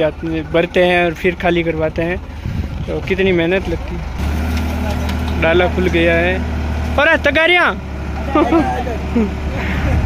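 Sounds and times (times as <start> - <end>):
tractor engine running: 0.0 - 10.0
man talking: 4.7 - 6.4, 7.0 - 9.2.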